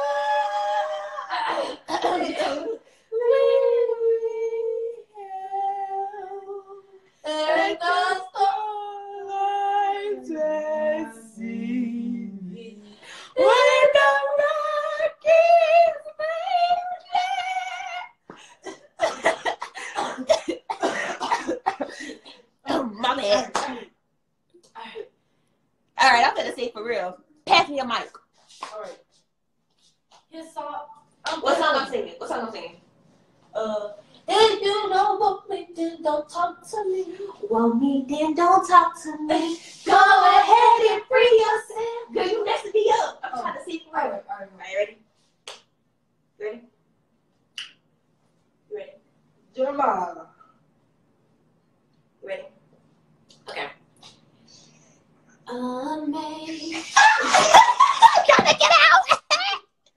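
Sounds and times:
woman singing: 0.0 - 18.1
woman coughing hard: 19.0 - 23.8.

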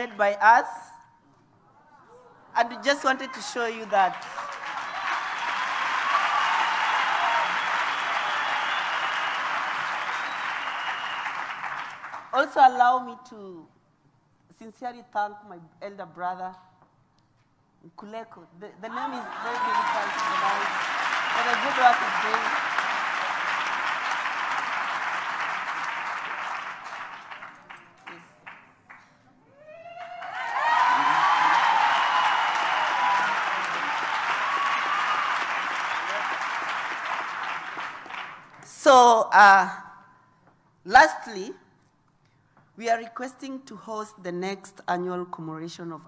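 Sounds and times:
audience applauding: 3.9 - 12.3, 18.9 - 29.0, 29.9 - 38.7.

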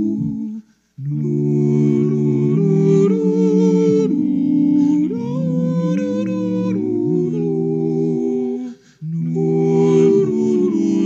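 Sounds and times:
people humming chords: 0.0 - 11.0.

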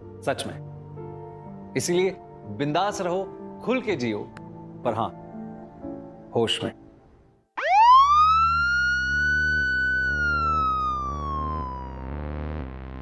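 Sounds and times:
siren wail: 7.6 - 13.0.

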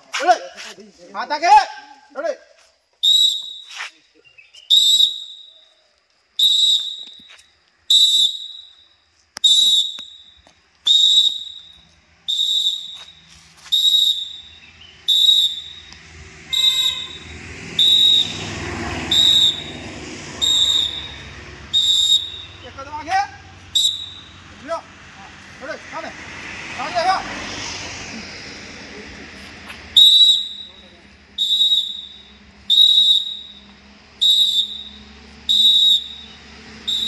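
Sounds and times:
background noise: 0.0 - 36.9
training whistle blasts: 3.0 - 24.6, 29.9 - 37.0.

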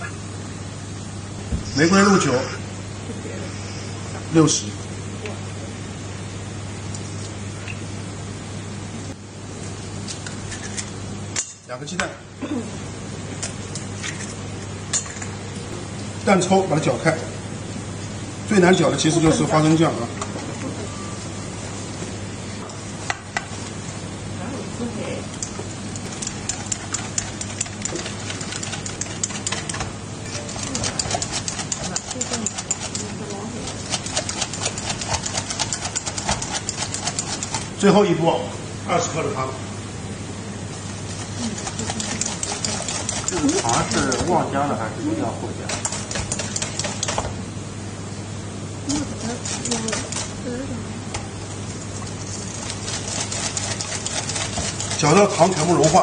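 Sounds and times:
whisk clicking against metal bowl: 26.0 - 29.9, 30.5 - 33.2, 33.8 - 37.7, 41.6 - 44.3, 45.7 - 47.2, 52.9 - 56.0
whisk stirring thick sauce: 26.0 - 37.7, 41.0 - 44.4, 45.7 - 47.2, 49.0 - 50.4, 52.0 - 56.0.

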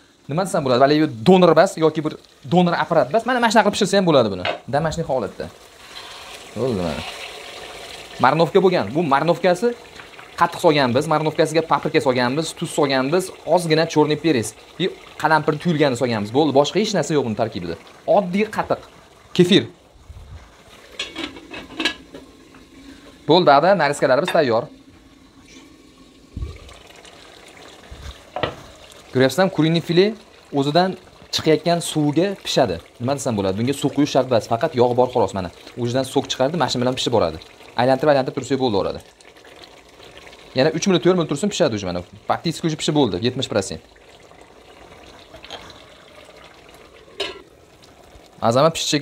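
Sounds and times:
chicken sizzling in a pot: 0.0 - 49.0
man speaking: 0.3 - 5.5, 6.6 - 7.1, 23.3 - 24.8.

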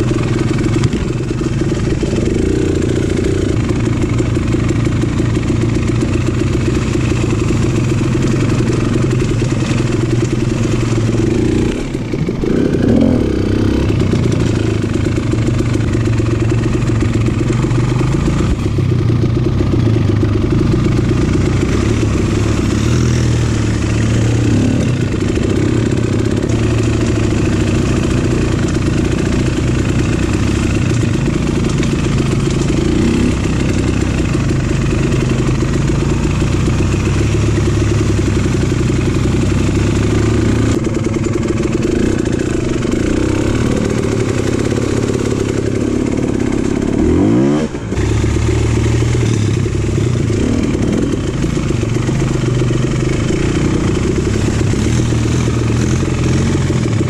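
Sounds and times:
dirt bike engine running: 0.0 - 57.0.

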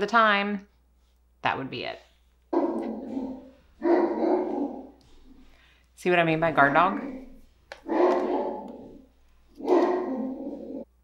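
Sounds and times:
dog barking: 2.5 - 5.0, 7.8 - 8.8, 9.6 - 10.8.

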